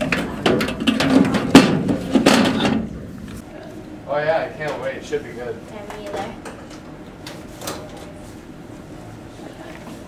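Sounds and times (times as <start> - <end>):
metal locker door shutting: 0.0 - 2.9
low room hum: 0.0 - 10.0.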